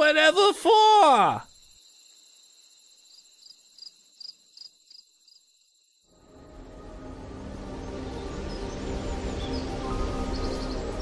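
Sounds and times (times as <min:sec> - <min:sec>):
cricket chirping: 0:00.0 - 0:06.4
music: 0:06.1 - 0:11.0.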